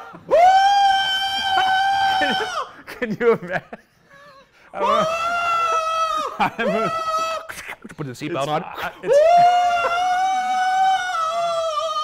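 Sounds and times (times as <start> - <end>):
man screaming: 0.0 - 2.8, 4.8 - 7.5, 8.9 - 12.0.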